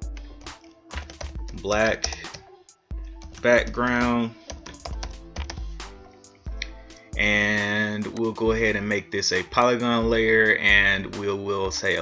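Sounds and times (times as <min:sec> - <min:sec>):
computer keyboard typing: 0:00.0 - 0:02.4, 0:04.5 - 0:05.6
faint music: 0:00.0 - 0:12.0.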